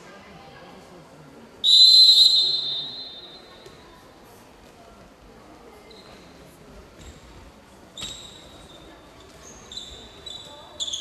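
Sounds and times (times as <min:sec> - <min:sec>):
referee's whistle blast: 0:01.6 - 0:03.4.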